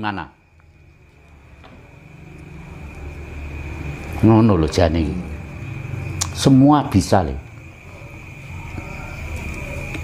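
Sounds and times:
faint high-pitched whine: 0:00.0 - 0:10.0
low steady hum: 0:00.0 - 0:10.0.

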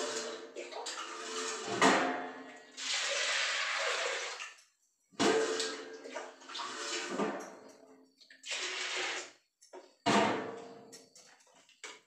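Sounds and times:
water splashing in steel pot: 0:00.0 - 0:07.6.

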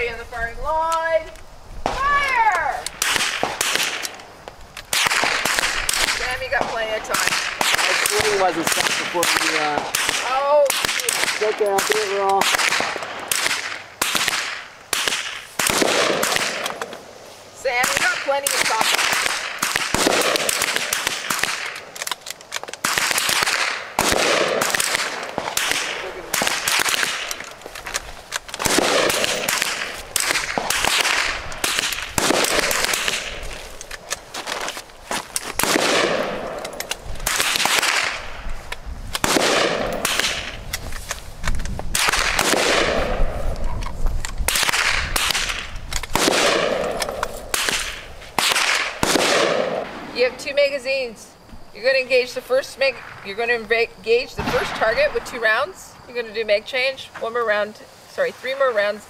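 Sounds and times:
rifle shots with echo: 0:02.9 - 0:04.2, 0:04.9 - 0:17.0, 0:17.7 - 0:22.2, 0:22.8 - 0:34.1, 0:35.6 - 0:38.4, 0:39.1 - 0:40.6, 0:41.9 - 0:43.4, 0:44.5 - 0:50.3, 0:54.1 - 0:55.6.

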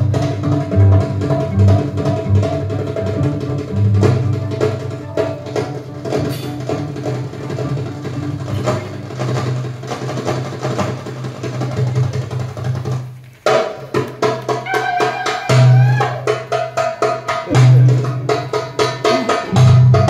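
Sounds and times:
violin: 0:00.0 - 0:09.0
hand drum beating: 0:00.0 - 0:20.0
qanun: 0:00.0 - 0:20.0.

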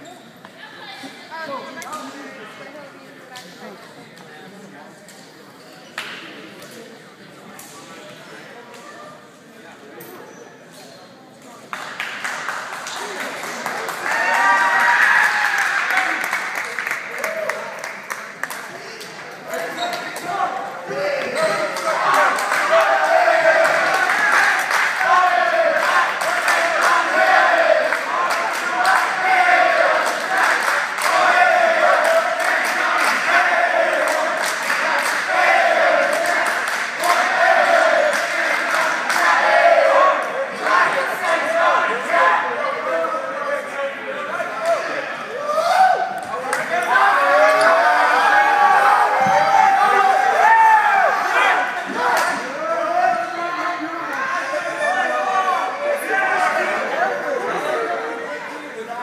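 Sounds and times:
people shouting in echoing hall: 0:20.2 - 0:59.0.

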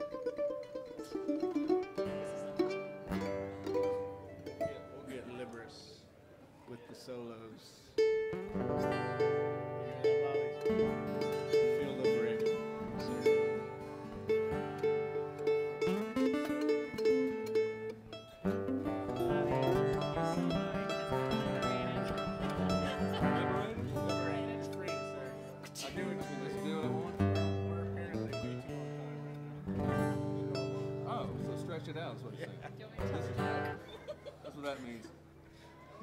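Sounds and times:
mandolin playing: 0:00.0 - 0:06.2, 0:07.9 - 0:35.9
acoustic guitars playing: 0:00.0 - 0:06.4, 0:07.8 - 0:36.0.

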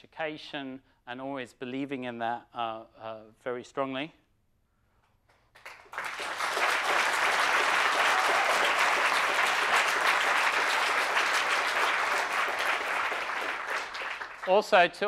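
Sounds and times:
audience applauding: 0:05.5 - 0:15.0.

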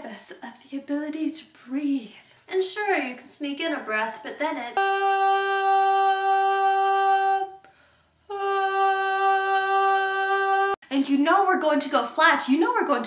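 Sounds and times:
woman breathing in: 0:07.6 - 0:08.2.

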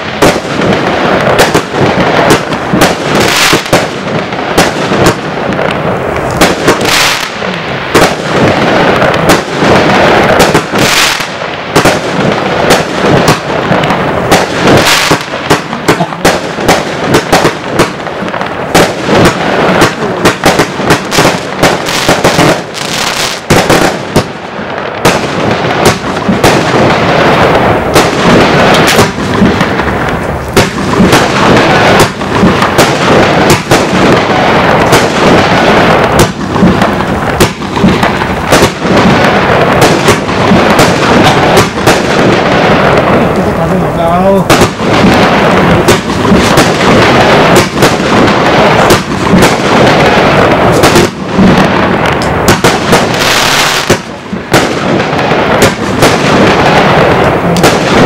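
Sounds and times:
firework reports: 0:00.0 - 0:58.0
firework stars crackling: 0:00.0 - 0:58.0.

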